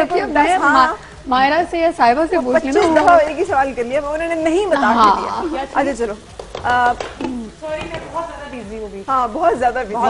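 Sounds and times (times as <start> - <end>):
woman speaking: 0.0 - 10.0.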